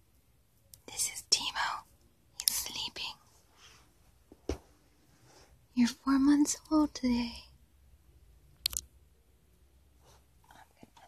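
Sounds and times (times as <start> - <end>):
person whispering: 0.8 - 3.4, 5.8 - 7.6, 10.4 - 11.0.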